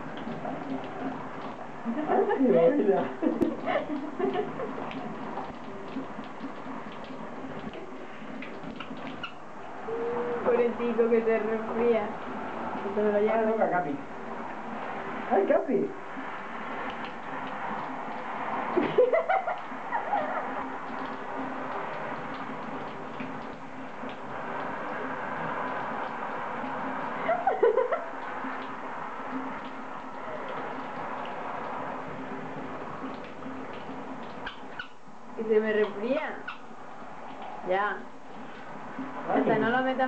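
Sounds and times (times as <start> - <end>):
shower water running: 0.0 - 40.0.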